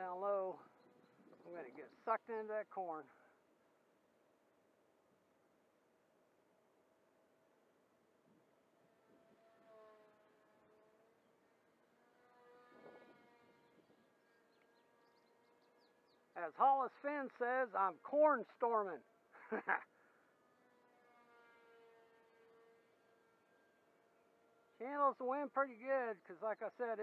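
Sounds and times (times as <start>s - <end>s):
model plane motor whine: 0.0s - 1.8s, 7.8s - 16.4s, 19.9s - 24.8s.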